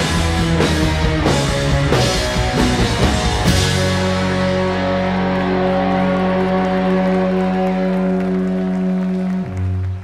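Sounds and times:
rock band holding final chord: 0.0s - 10.0s.

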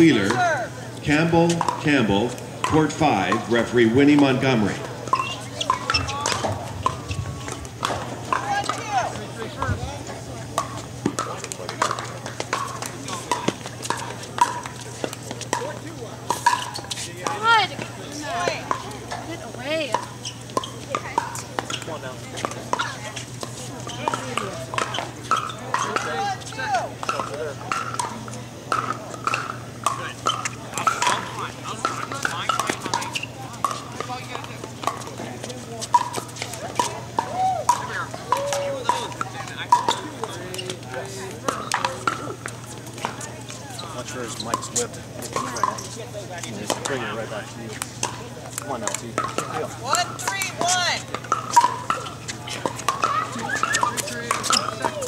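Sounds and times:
chatter of people: 0.0s - 55.0s
paddles hitting plastic balls: 10.6s - 17.9s, 27.0s - 43.2s, 47.7s - 55.0s.

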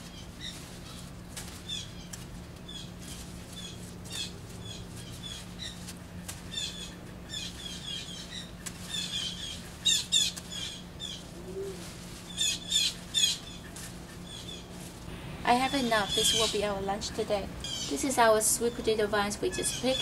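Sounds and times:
birds chirping: 0.0s - 20.0s
leaves and vines rustling: 0.0s - 20.0s.

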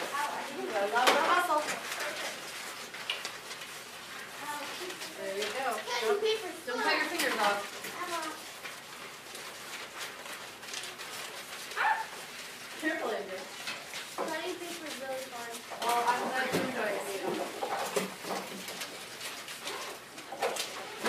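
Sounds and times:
children chattering: 0.0s - 2.8s, 4.3s - 8.6s.

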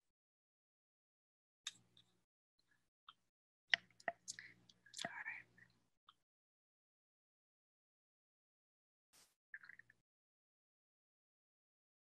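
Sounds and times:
breathy whispering: 4.3s - 5.6s.

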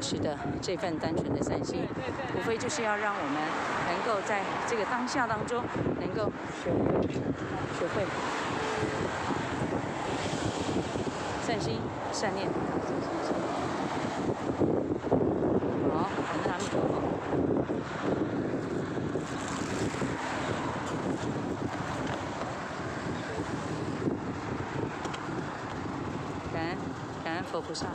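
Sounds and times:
road traffic passing: 0.0s - 27.9s
wind buffeting microphone: 0.0s - 27.9s.

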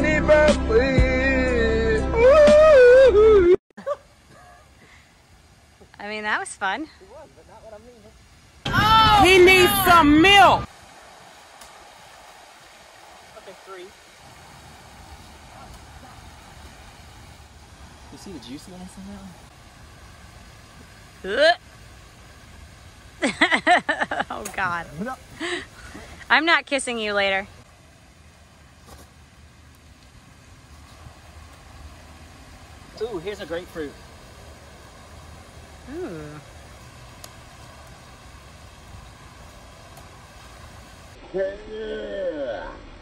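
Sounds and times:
faint outdoor hiss: 0.0s - 43.0s.

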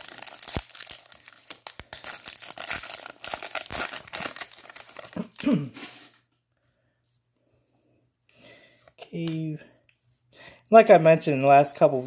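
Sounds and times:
plastic wrapper tearing and crinkling: 0.0s - 6.3s
person clearing throat: 5.2s - 5.9s.

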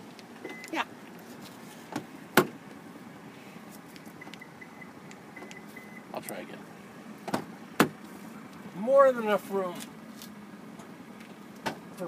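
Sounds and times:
car door locks clicking: 1.9s - 2.6s, 4.1s - 5.7s, 7.2s - 8.0s.

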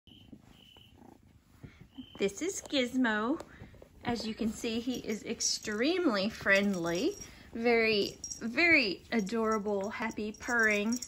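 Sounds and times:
kitten purring: 0.1s - 5.7s.

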